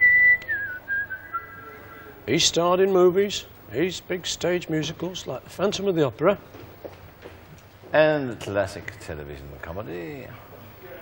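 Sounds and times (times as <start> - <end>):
person whistling a tune: 0.0 - 2.0.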